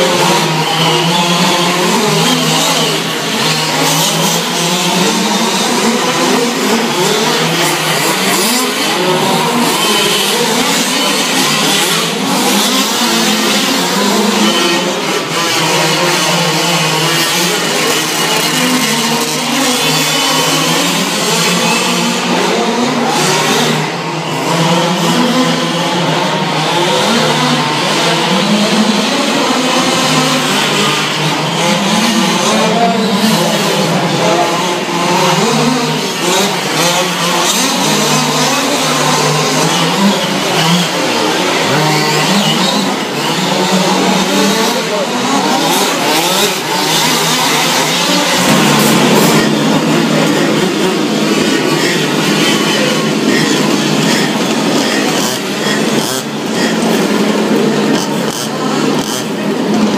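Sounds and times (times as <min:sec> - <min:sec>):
model truck engines revving: 0:00.0 - 0:59.9.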